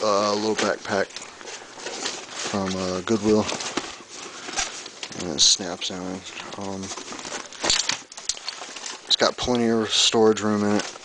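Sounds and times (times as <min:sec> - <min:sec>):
backpack and plastic rustling: 0:00.0 - 0:11.0.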